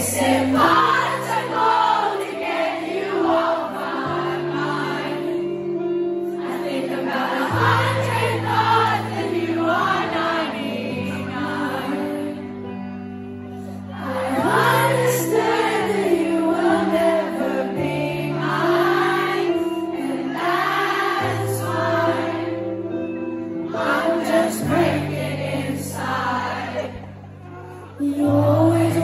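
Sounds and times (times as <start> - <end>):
crowd singing along: 0.0 - 29.0.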